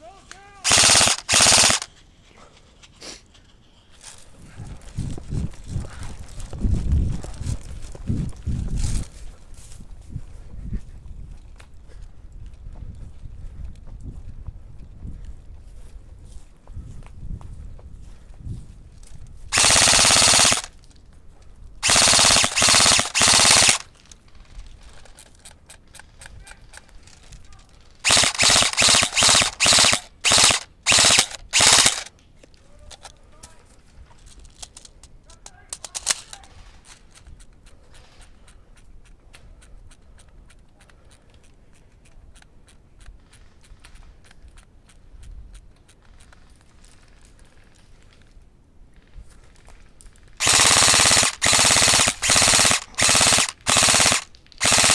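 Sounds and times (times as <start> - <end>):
airsoft rifle firing bursts: 0.6 - 1.9, 19.5 - 20.7, 21.8 - 23.9, 28.0 - 32.1, 50.4 - 54.9
faint rapid clicking: 0.6 - 1.9, 19.5 - 21.0, 21.8 - 33.6, 49.5 - 54.9.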